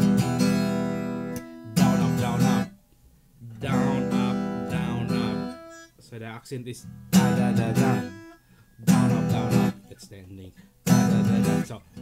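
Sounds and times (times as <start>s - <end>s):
acoustic guitar strummed: 0.0s - 2.8s, 3.4s - 12.0s.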